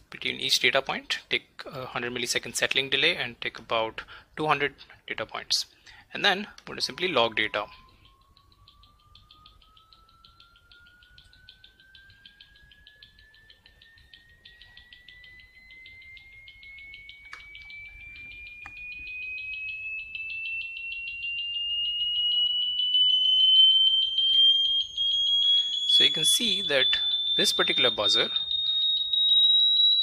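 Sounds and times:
buzzer tone rising in pitch: 0:14.1 - 0:30.0.

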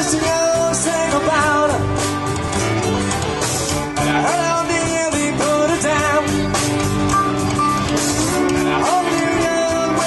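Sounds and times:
country-rock band playing: 0:00.0 - 0:10.0.

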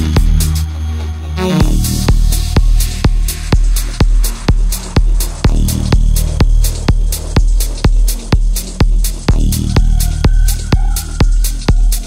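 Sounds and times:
techno kick drum: 0:00.0 - 0:00.6, 0:01.6 - 0:12.0
deep droning bass: 0:00.0 - 0:12.0.

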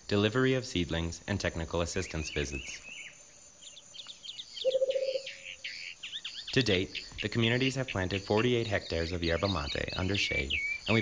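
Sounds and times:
forest birds chirping: 0:00.0 - 0:11.0
high insect trill: 0:00.0 - 0:11.0.

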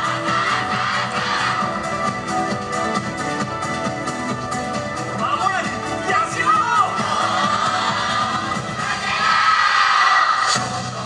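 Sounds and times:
crowd shouting together: 0:00.0 - 0:01.7, 0:06.6 - 0:10.6
dance music: 0:00.0 - 0:11.0.

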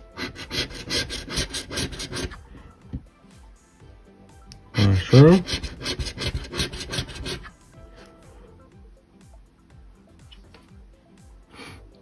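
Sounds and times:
quiet background music: 0:00.0 - 0:12.0
coin scratching lottery ticket: 0:00.1 - 0:02.4, 0:04.8 - 0:07.6.

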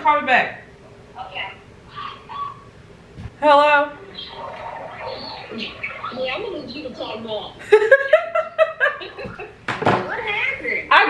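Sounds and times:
woman talking through phone speaker: 0:03.4 - 0:07.5.

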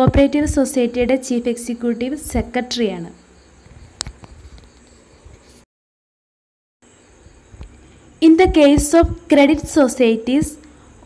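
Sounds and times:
background hiss: 0:00.0 - 0:05.6, 0:06.8 - 0:11.0.

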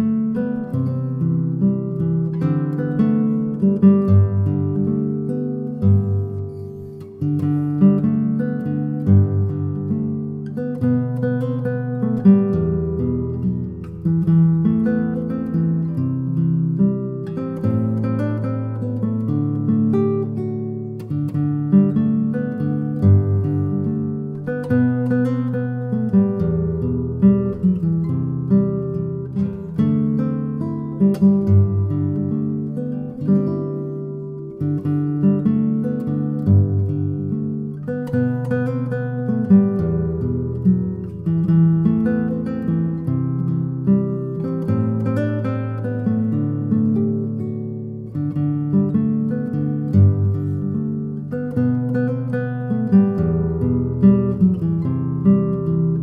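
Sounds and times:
fingerpicked classical guitar: 0:00.0 - 0:56.0.

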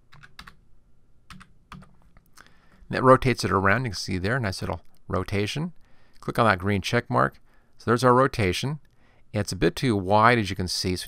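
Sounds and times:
computer keyboard keystrokes: 0:00.1 - 0:00.6, 0:01.3 - 0:02.0.

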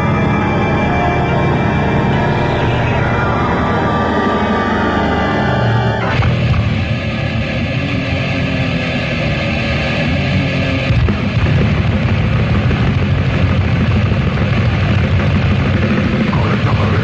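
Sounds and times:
death metal band playing: 0:00.0 - 0:17.0.

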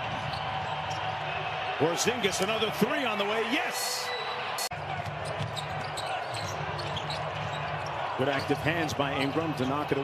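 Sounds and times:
court noises: 0:00.0 - 0:10.0.

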